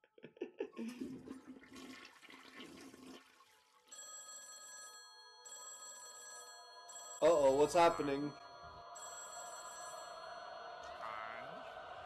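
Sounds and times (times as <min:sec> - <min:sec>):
telephone ringing: 0:03.9 - 0:10.8.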